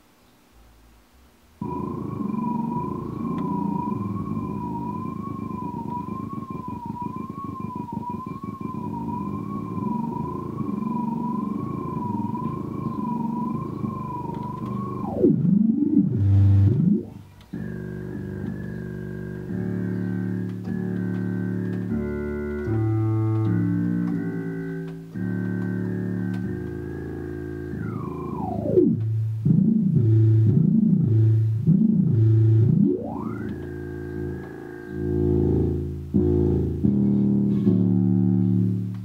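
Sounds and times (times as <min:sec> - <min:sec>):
sustained low synth chord: 0:01.6 - 0:39.0
synthesizer lead note: 0:01.6 - 0:39.0.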